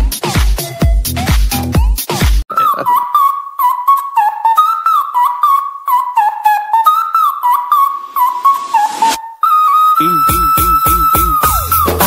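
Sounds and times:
flute ringtone melody: 1.0 - 12.0.

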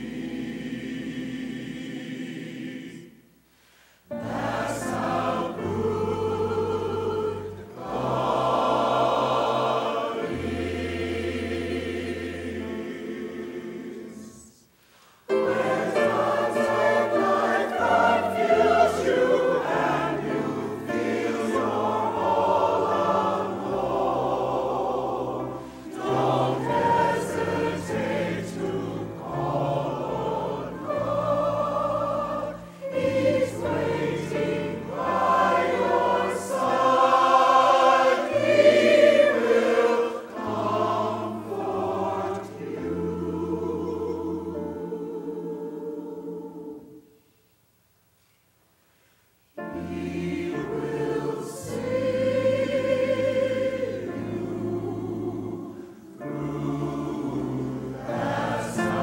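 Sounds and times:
choir singing: 0.0 - 3.4, 4.1 - 47.4, 49.6 - 59.0.

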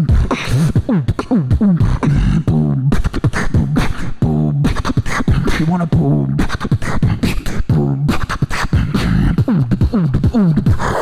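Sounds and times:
beatboxing into microphone: 0.0 - 11.0.

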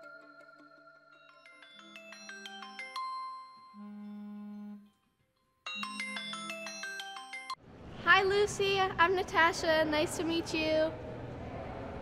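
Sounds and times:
chiming mallet percussion notes: 0.0 - 7.6
low held tone: 3.8 - 4.9.

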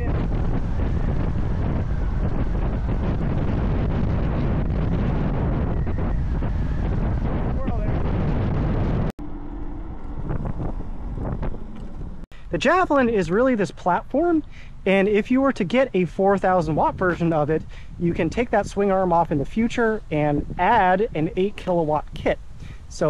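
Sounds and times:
brief low hum: 0.0 - 12.4
wind buffeting microphone: 0.0 - 23.0.

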